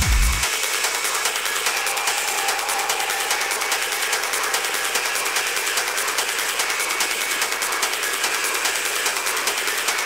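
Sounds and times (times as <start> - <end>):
industrial techno music: 0.0 - 10.0.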